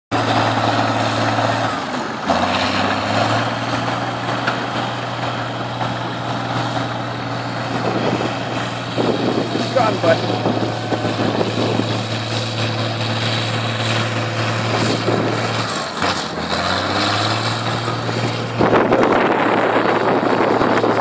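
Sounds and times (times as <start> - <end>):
heavy machinery engines running: 0.1 - 21.0.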